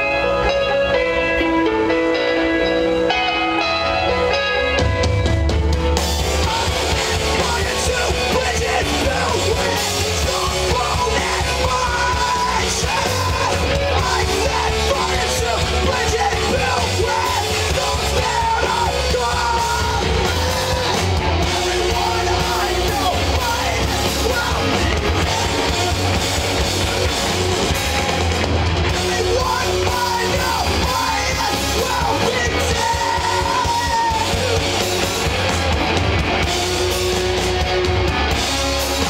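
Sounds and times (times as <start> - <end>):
electric guitars chiming chords: 0.0 - 39.0
punk rock band playing: 0.0 - 39.0
man yelling vocals: 6.4 - 21.0, 21.6 - 26.1, 28.9 - 34.8.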